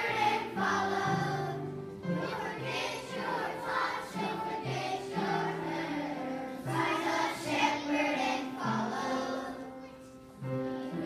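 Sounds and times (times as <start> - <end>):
children's choir singing: 0.0 - 11.0
upright piano: 0.0 - 11.0.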